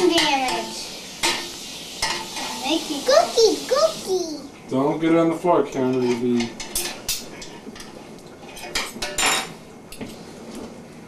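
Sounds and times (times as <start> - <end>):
child making high-pitched playful sounds: 2.6 - 4.5.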